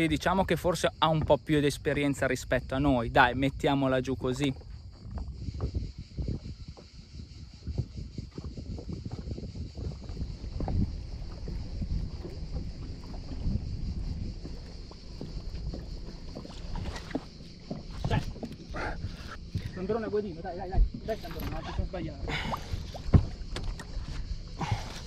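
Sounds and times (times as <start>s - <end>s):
water lapping against boat hull: 0.0s - 25.0s
wind on microphone: 0.0s - 25.0s.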